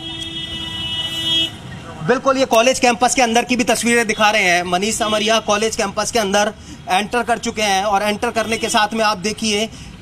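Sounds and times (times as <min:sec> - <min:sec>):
vehicle horn blast: 0:00.0 - 0:01.6.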